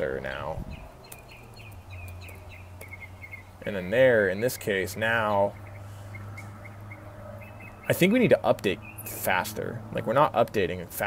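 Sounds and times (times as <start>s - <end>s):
faint bird chirps: 0.7s - 3.6s, 4.4s - 8.0s.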